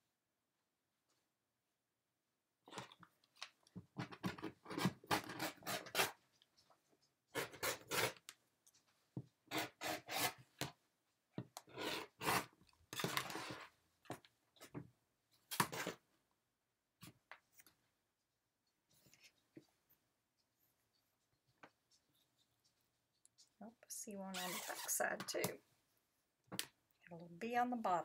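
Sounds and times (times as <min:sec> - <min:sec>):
rotary cutter rasping through fabric: 0:04.6 - 0:06.2, 0:07.3 - 0:08.2, 0:09.5 - 0:10.4, 0:11.6 - 0:13.5, 0:24.4 - 0:25.0.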